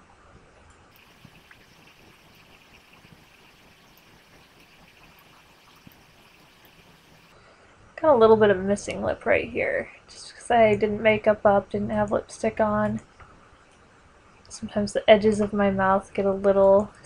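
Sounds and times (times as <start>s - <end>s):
faint recording hiss: 0.0s - 17.0s.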